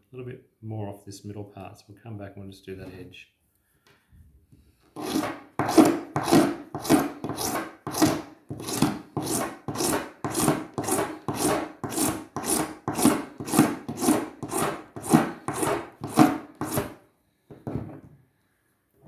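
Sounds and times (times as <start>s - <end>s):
file rasping on plastic: 5.0s - 17.0s.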